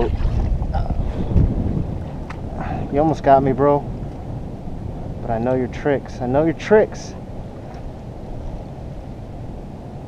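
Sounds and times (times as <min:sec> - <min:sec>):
wind buffeting microphone: 0:00.0 - 0:10.0.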